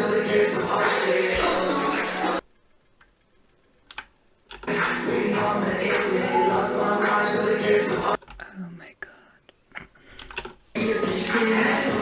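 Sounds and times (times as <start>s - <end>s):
song playing: 0.4s - 2.4s, 4.7s - 8.2s, 10.8s - 12.0s
sharp clicks: 3.8s - 4.7s.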